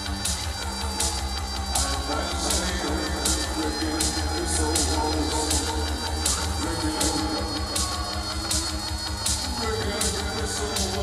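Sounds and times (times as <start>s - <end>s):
deep synth bass: 0.0s - 11.0s
drum machine snare: 0.0s - 11.0s
man singing into a microphone: 1.7s - 8.6s, 9.5s - 11.0s.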